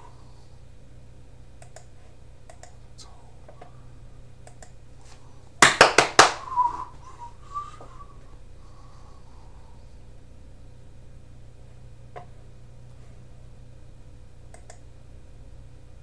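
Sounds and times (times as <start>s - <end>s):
steady low hum: 0.0s - 16.0s
short wavering whistle: 6.2s - 8.2s.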